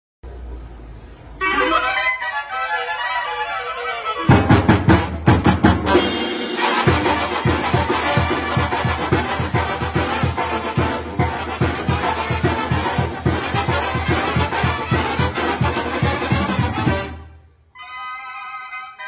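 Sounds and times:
brass band horns: 0:01.4 - 0:19.0
drums and tuba beat: 0:04.2 - 0:17.3.

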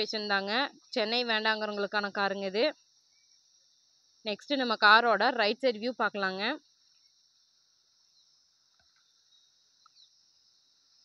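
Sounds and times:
high insect chorus: 0:00.0 - 0:11.0.

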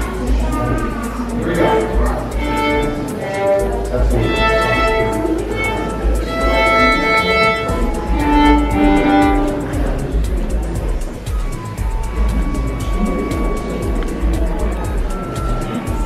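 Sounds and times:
solo violin melody: 0:01.2 - 0:10.8.

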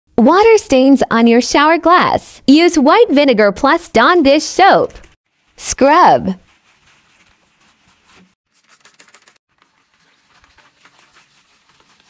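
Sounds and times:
scrubbing wet shower glass: 0:06.4 - 0:12.0.

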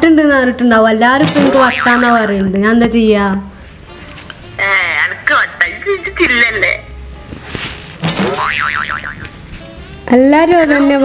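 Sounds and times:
cartoon boing: 0:01.2 - 0:02.3, 0:08.2 - 0:09.3.

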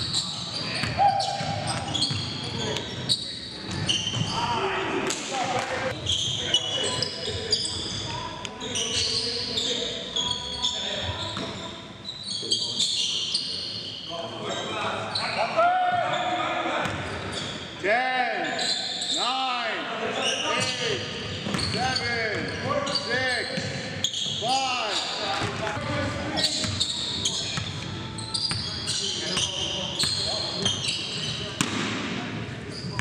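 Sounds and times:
sneakers squeaking on floor: 0:00.0 - 0:04.6, 0:05.9 - 0:17.8, 0:18.5 - 0:19.3, 0:20.2 - 0:33.0
basketball bouncing on court: 0:00.8 - 0:02.4, 0:26.6 - 0:26.8, 0:31.6 - 0:32.2.

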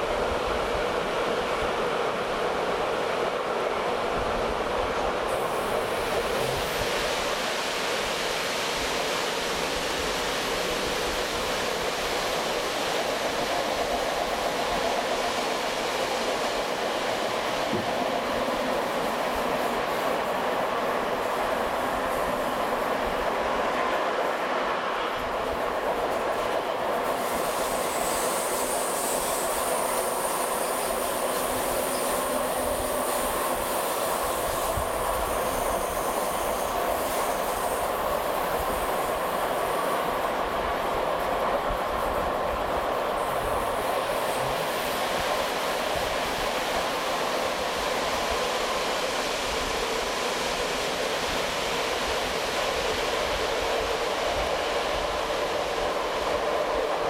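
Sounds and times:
train wheels rumbling on rail: 0:00.0 - 0:57.0
high squeal of wheels: 0:27.2 - 0:33.3, 0:34.6 - 0:37.8.

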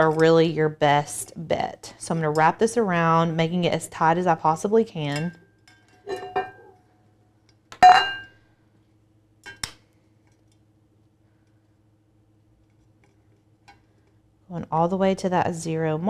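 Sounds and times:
metal tumbler clinking: 0:05.1 - 0:06.7.

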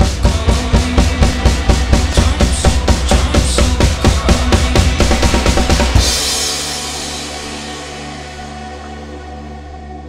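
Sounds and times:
drum kit fill: 0:00.0 - 0:10.0
low synth and bass tones: 0:00.0 - 0:10.0
cymbals crashing and ringing: 0:06.0 - 0:09.1.

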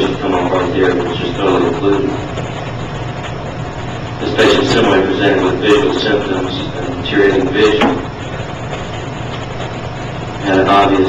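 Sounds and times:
recording hum and hiss: 0:00.0 - 0:11.0.

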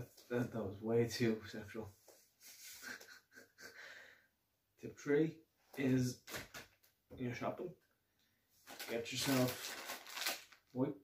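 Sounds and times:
man chuckling breathily: 0:02.4 - 0:04.2.

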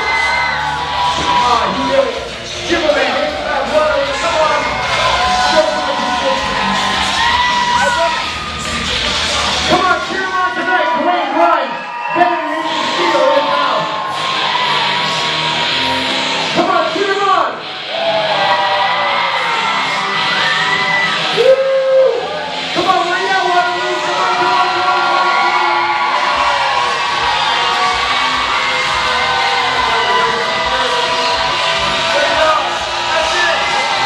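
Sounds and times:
crowd yelling and cheering: 0:00.0 - 0:34.0
loud music: 0:00.0 - 0:34.0.

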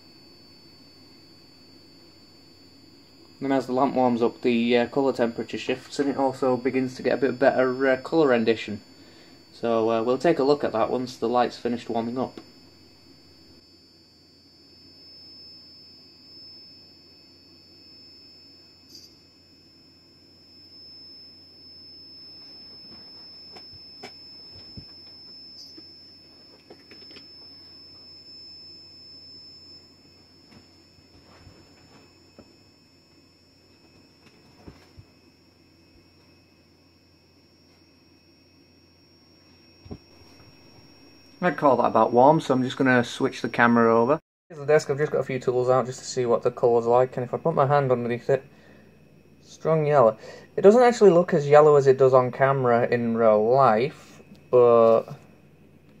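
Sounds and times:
faint high-pitched whine: 0:00.0 - 0:56.0
low hum: 0:00.0 - 0:56.0.

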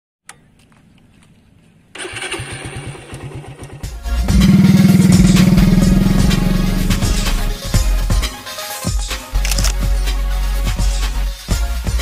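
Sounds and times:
motorcycle starter cranking: 0:02.0 - 0:07.4
motorcycle engine running: 0:02.2 - 0:08.0
music: 0:03.7 - 0:12.0.

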